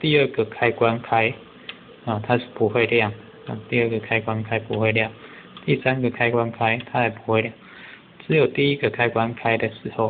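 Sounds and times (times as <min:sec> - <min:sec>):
man talking: 0:00.0 - 0:07.6, 0:08.2 - 0:10.0.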